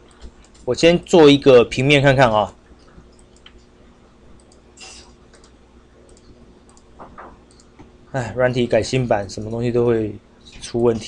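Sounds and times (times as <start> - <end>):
low room hum: 0.0 - 11.0
computer mouse clicks: 2.9 - 3.7, 4.4 - 7.8.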